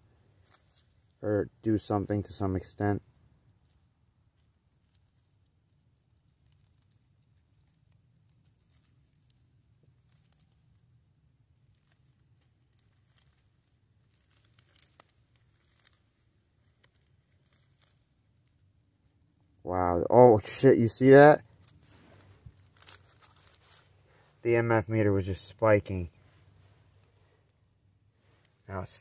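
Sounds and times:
small clicks and crackles: 0.2 - 19.7, 21.0 - 29.0.

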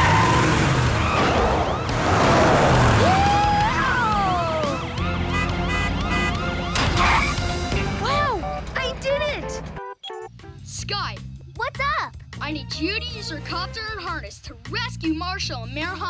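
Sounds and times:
car engine and tyre noise: 0.0 - 7.6
background music: 0.0 - 16.0
police siren: 6.0 - 7.5.

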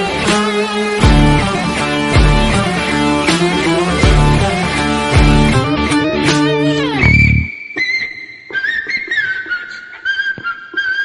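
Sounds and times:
strummed guitar: 0.0 - 7.5
high whistled melody: 6.3 - 11.0.

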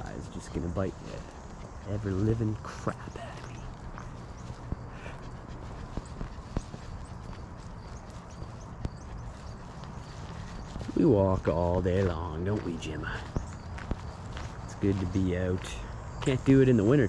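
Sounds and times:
low wind rumble on microphone: 0.0 - 15.3
footsteps on paved path: 0.0 - 17.0.

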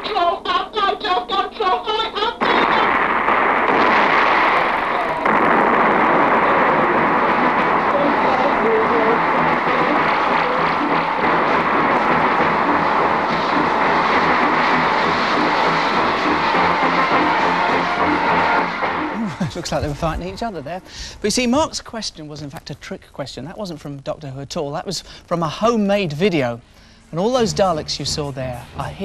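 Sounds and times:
gunfire: 2.4 - 19.5
explosions: 2.4 - 20.8
film music: 4.8 - 20.9, 27.1 - 29.0.

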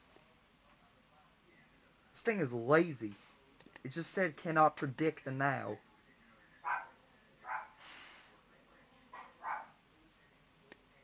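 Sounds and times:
dog barking faintly: 6.6 - 7.9, 9.1 - 9.8.

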